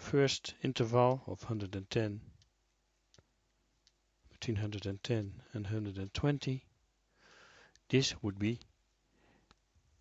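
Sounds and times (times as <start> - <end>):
faint clicks: 2.4 - 4.0, 7.6 - 7.9, 9.4 - 9.7.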